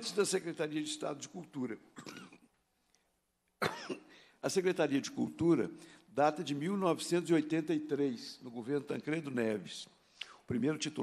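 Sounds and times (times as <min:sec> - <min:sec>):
man speaking: 0:00.0 - 0:02.0, 0:04.4 - 0:11.0
man coughing: 0:02.0 - 0:02.5, 0:03.6 - 0:04.2.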